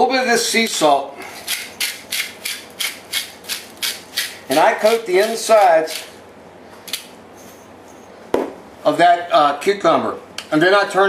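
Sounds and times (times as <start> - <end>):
salt grinder gritty rasps: 1.5 - 6.0.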